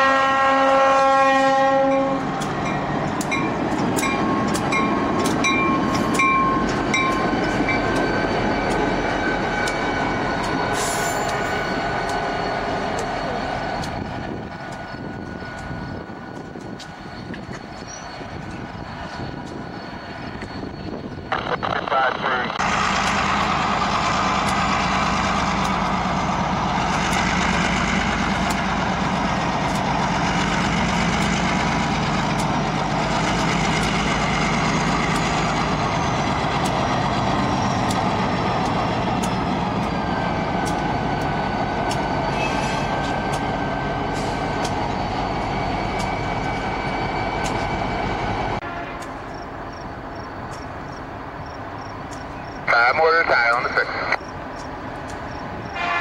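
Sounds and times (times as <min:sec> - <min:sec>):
train horn chord: 0:00.0 - 0:02.3, 0:48.6 - 0:49.2, 0:55.8 - 0:56.0
locomotive engine and wheel rumble: 0:00.0 - 0:56.0
crossing bell clanging: 0:01.9 - 0:21.3.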